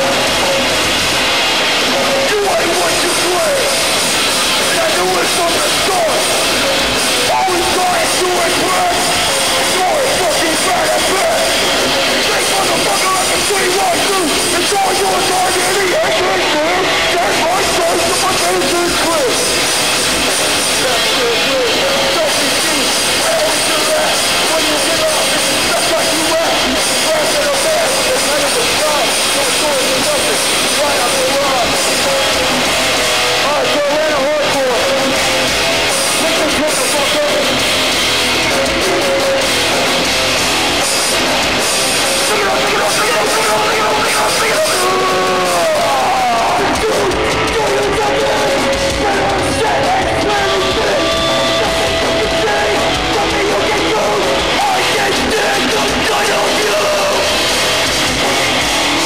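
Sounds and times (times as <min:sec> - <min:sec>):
hardcore band playing live: 0:00.0 - 0:59.0
shouted vocals: 0:42.0 - 0:59.0.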